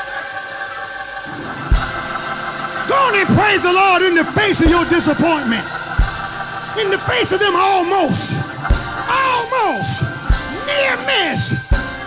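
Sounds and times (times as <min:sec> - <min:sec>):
church band sustained chords: 0:00.0 - 0:12.0
drum hit: 0:01.3 - 0:03.5, 0:04.2 - 0:07.4, 0:08.3 - 0:09.2.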